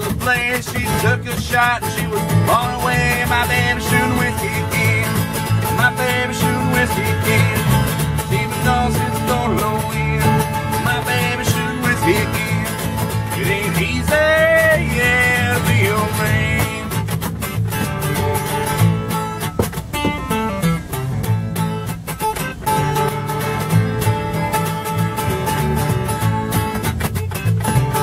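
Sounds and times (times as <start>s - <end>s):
acoustic guitar strumming: 0.0s - 28.0s
upright bass plucked: 0.0s - 28.0s.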